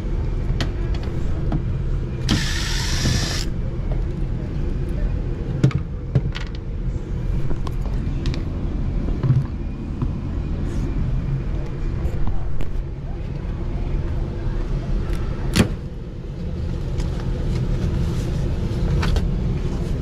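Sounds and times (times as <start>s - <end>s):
air handler blower hum: 0.0s - 6.0s.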